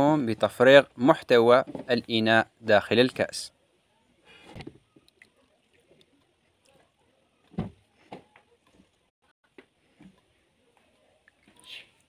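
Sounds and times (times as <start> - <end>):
liquid splashing and dripping: 4.6 - 7.0.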